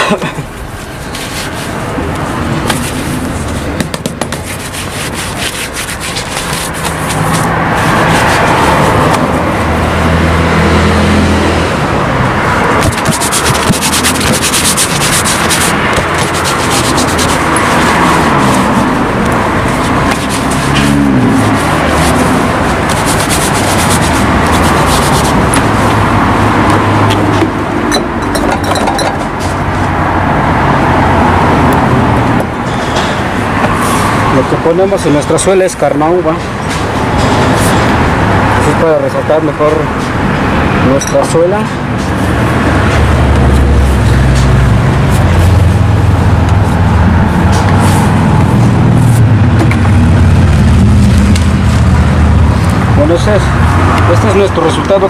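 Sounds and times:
street traffic engines: 0.0 - 55.0
cloth rubbing leather shoe: 0.6 - 9.4, 12.7 - 26.1.

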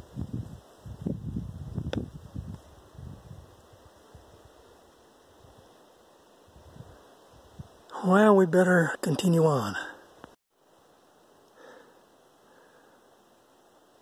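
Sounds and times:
wind buffeting microphone: 0.0 - 4.5, 6.5 - 7.8.

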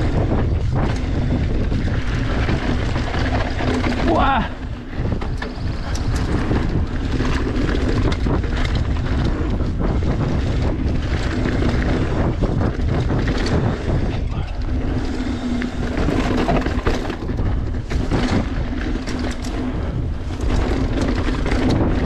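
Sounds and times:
bike rattling and knocking: 0.0 - 22.0
tyres on dirt: 0.0 - 22.0
wind rushing over microphone: 0.0 - 22.0.

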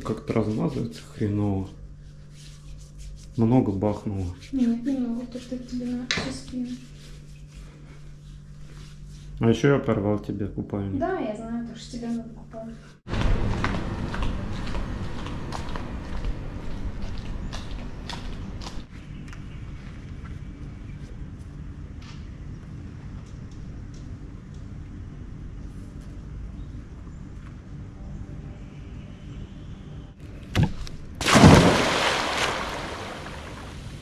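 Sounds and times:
flip-flop footsteps on tiles: 13.1 - 18.9
low rumble: 13.1 - 18.9.

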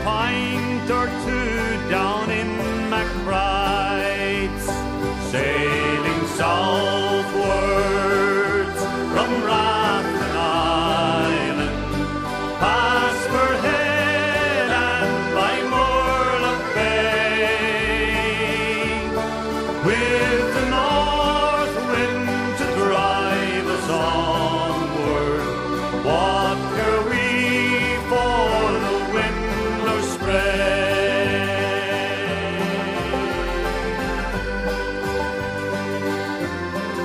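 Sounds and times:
steady low bass notes: 0.0 - 37.0
wavering folk melody: 0.0 - 37.0.

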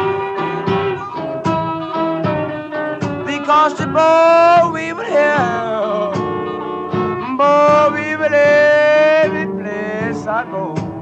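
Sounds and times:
blues guitar: 0.0 - 11.0.

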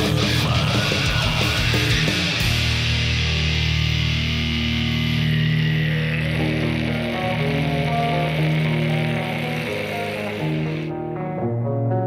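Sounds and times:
clean plucked guitar notes: 0.0 - 12.0
distorted heavy metal band: 0.0 - 12.0.

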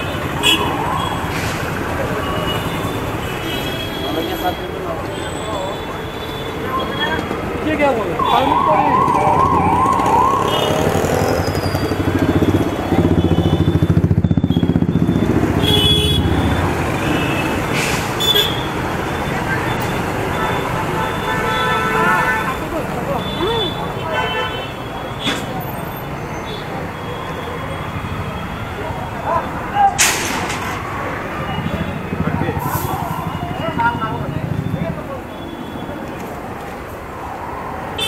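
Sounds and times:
street traffic: 0.0 - 38.0.

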